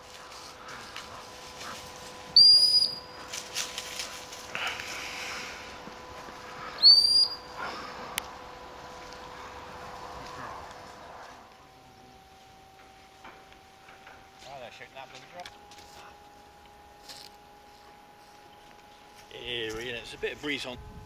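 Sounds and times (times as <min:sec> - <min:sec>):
rustling: 0:00.0 - 0:11.7
dog whistle blasts: 0:02.4 - 0:03.1, 0:06.8 - 0:07.5.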